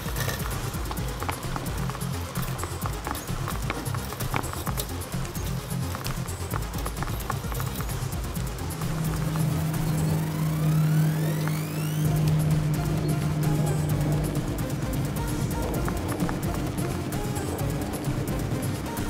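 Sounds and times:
background music with low beat: 0.0s - 19.0s
held low note: 8.2s - 19.0s
rising sweep: 8.3s - 19.0s.

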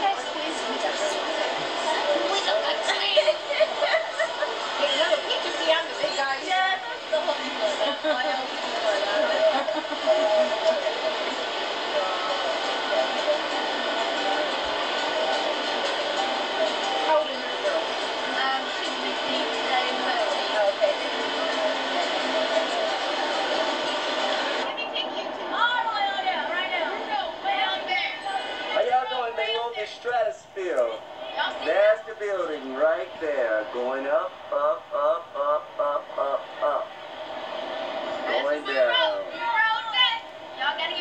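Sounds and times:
indistinct voices: 0.0s - 41.0s.

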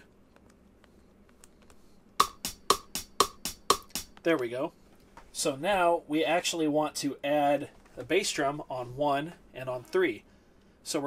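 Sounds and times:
sampled hi-hat: 2.1s - 4.5s.

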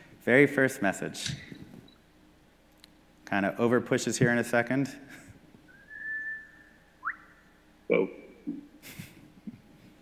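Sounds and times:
high whistle: 5.7s - 7.5s.

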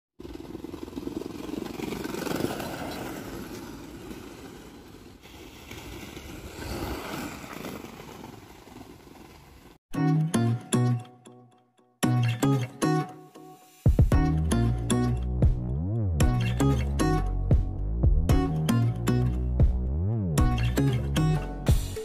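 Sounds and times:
skateboard wheels rolling on pavement: 0.2s - 9.8s.

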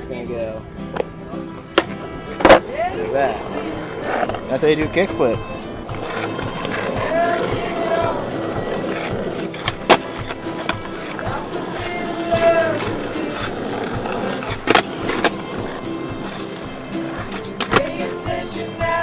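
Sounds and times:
skateboard wheels rolling on asphalt: 0.5s - 19.0s
skateboard wooden clacks: 0.9s - 2.7s, 5.4s - 18.1s
music with singing: 2.4s - 19.0s.

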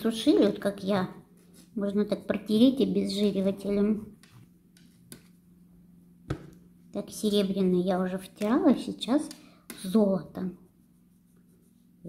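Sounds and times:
low steady hum: 0.0s - 12.0s
pad wiping a nail: 10.6s - 12.0s.

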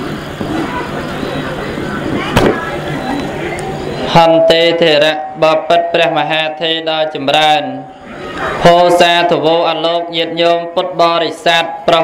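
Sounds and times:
faint indistinct voices: 0.0s - 5.4s, 7.3s - 12.0s
background noise: 0.0s - 12.0s.

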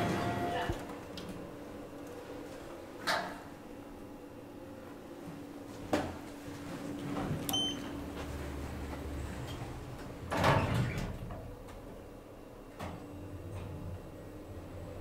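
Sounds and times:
sliding doors closing rumble: 0.0s - 1.1s, 6.7s - 12.1s.

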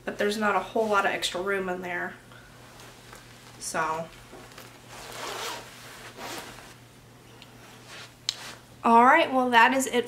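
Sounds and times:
jacket zipper rasping: 4.8s - 6.8s.

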